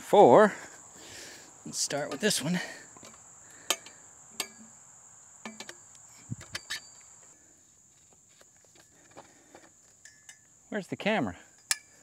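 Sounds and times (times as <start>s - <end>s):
crickets chirping: 0.0s - 12.0s
metal pipes clicking and knocking: 5.4s - 5.8s, 8.8s - 10.5s, 11.5s - 12.0s.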